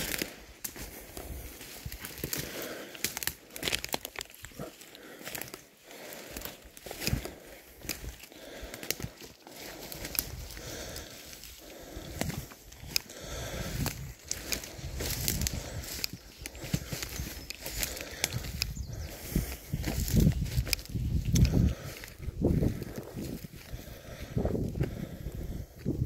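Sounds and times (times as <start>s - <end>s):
twigs snapping underfoot: 0.0s - 25.8s
footsteps on dry brush: 0.0s - 26.0s.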